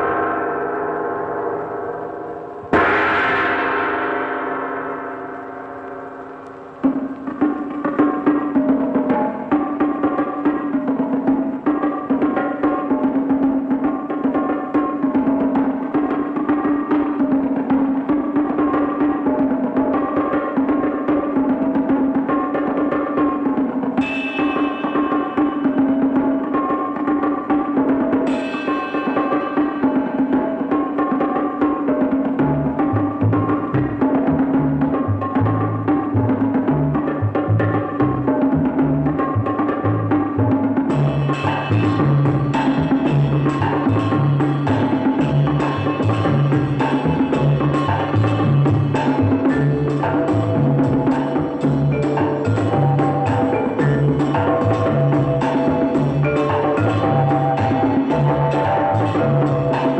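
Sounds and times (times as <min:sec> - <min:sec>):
cymbal crashes: 0:00.0 - 0:09.5, 0:24.0 - 0:27.0, 0:27.7 - 0:31.0
drum-led percussion music: 0:00.0 - 0:59.9.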